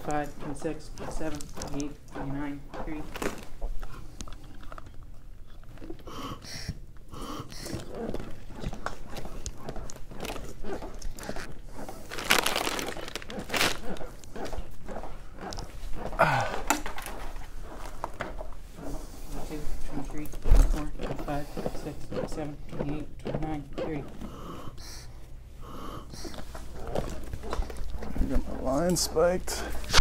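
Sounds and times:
plastic wrappers crinkling: 9.9 - 14.6.

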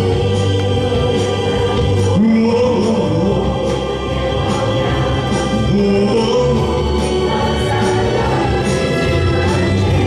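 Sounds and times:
choir singing with band: 0.0 - 10.0.

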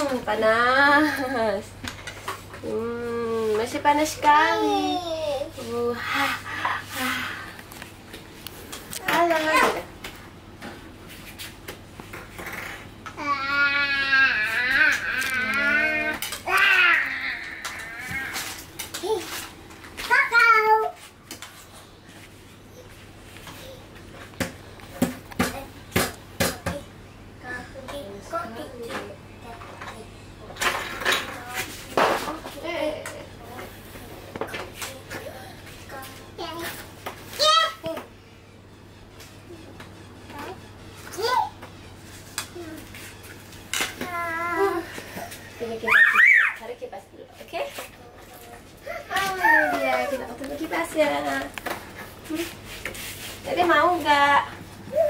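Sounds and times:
toddler crying: 13.2 - 18.5, 45.8 - 46.6, 48.8 - 50.3
toddler babbling: 48.8 - 50.3.

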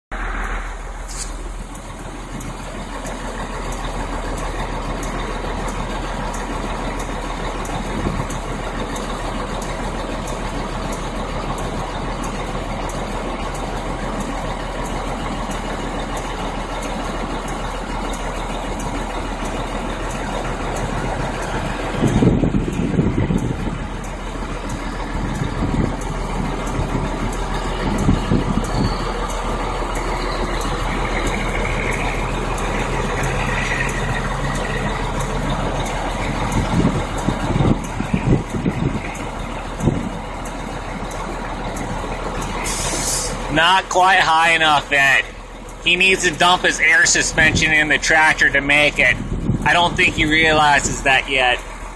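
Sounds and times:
low rumble: 0.1 - 43.6, 44.8 - 51.9
diesel truck engine running: 0.1 - 51.9
traffic noise: 0.1 - 51.9.

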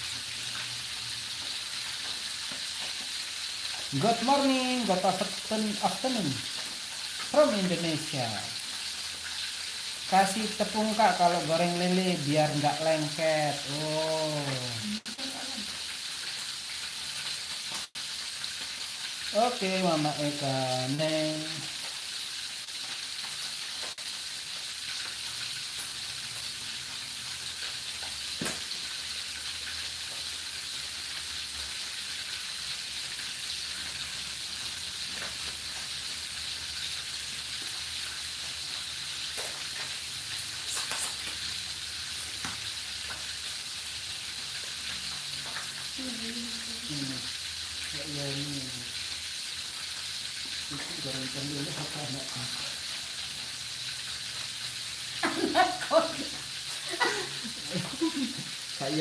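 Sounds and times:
fish deep-frying in oil: 0.0 - 59.0.

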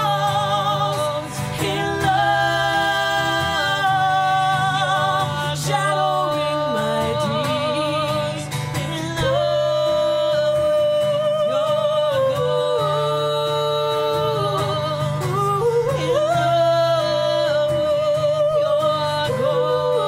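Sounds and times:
acoustic guitar: 0.0 - 20.0
woman singing long wavering notes: 0.0 - 20.0.

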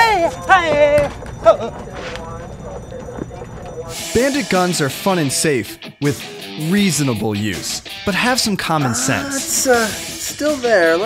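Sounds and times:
person yelping: 8.8 - 9.7.

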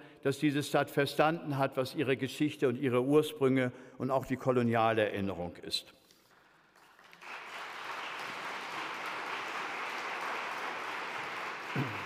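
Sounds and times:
audience applauding: 6.3 - 12.0.

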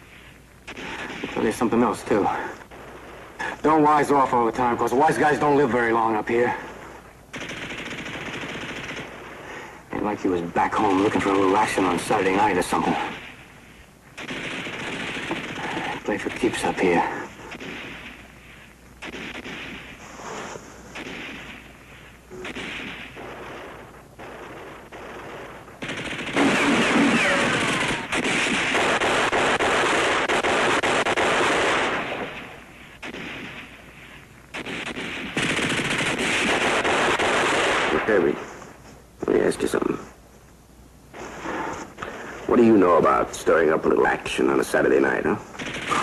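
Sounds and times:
machine-gun fire bursts: 0.7 - 4.3, 7.3 - 9.6, 14.2 - 33.8, 34.5 - 38.4, 45.6 - 46.0
scattered gunshots: 0.7 - 6.7, 7.3 - 13.5, 14.2 - 18.4, 19.0 - 33.9, 34.5 - 38.5, 45.6 - 46.0.

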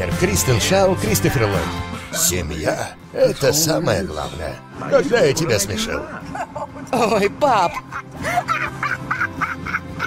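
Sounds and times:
background music: 0.0 - 10.0
woman laughing: 5.6 - 10.0.

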